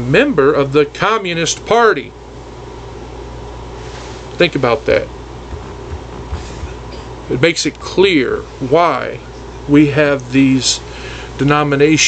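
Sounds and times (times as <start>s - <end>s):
low hum and hiss: 0.0s - 12.0s
faint low knocks: 5.5s - 7.2s.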